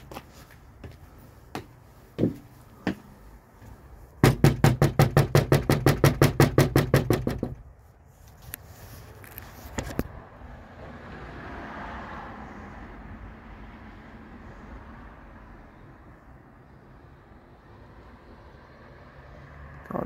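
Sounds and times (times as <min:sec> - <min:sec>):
rapid knocking on door: 0:04.2 - 0:07.6.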